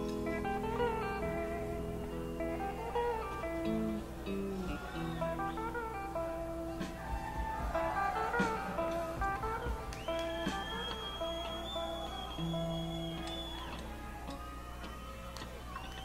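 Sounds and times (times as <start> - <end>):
electric guitar picking notes: 0.0 - 15.0.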